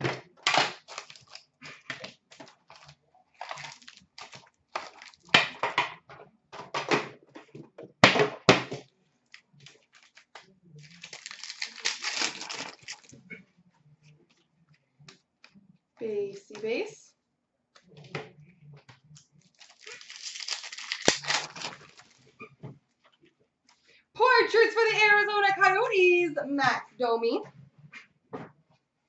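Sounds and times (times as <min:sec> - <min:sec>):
packaging crackling and ripping: 0:00.5 - 0:05.3, 0:09.3 - 0:13.2, 0:19.5 - 0:22.3
foil pack tearing open: 0:00.7 - 0:01.5, 0:03.4 - 0:05.3, 0:10.0 - 0:13.2, 0:19.6 - 0:22.2
card handling: 0:09.3 - 0:13.2, 0:19.5 - 0:22.3.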